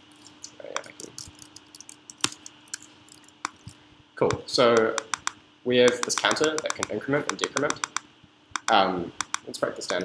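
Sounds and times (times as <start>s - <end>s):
keyboard and mouse clicks: 3.4s - 10.0s.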